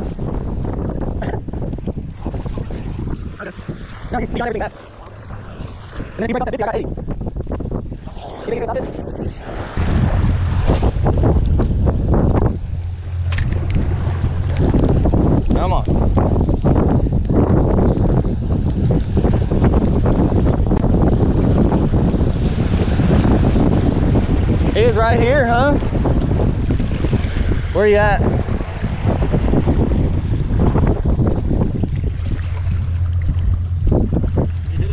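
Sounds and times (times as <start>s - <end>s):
wind gusting on microphone: 0.0s - 34.9s
waves washing against rocks: 8.0s - 34.9s.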